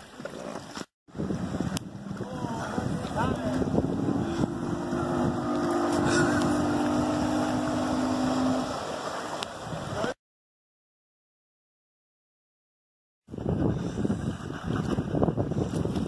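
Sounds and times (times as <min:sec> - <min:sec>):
motorboat engine humming: 0:01.1 - 0:09.8.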